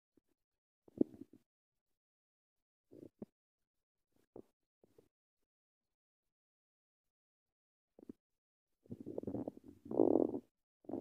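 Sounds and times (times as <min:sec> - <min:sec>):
rubbing on phone microphone: 0:08.8 - 0:11.0.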